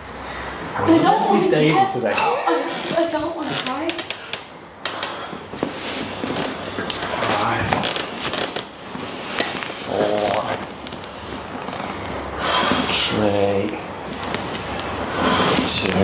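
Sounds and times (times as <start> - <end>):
person shifting on padded mat: 5.0 - 12.0
hands rubbing skin and clothing: 5.2 - 12.0.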